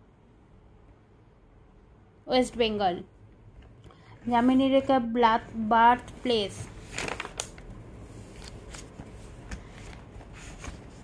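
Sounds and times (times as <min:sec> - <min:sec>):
book pages rustling: 0:06.0 - 0:11.0.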